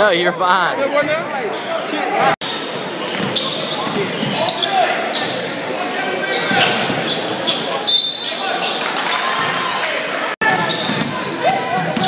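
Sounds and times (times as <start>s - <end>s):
crowd chatter: 0.0s - 12.0s
sneakers squeaking: 0.9s - 9.8s, 10.4s - 12.0s.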